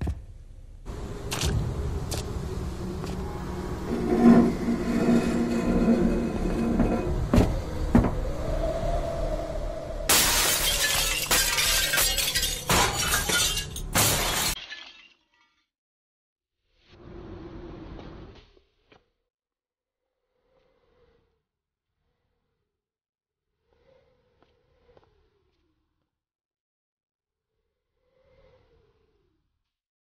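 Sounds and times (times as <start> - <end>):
low rumble: 0.4 - 10.1
glass shattering: 10.1 - 15.5.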